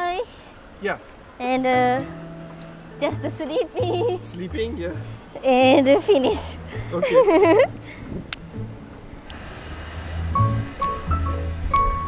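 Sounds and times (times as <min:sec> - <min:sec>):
rickshaw rolling on pavement: 0:09.3 - 0:12.0.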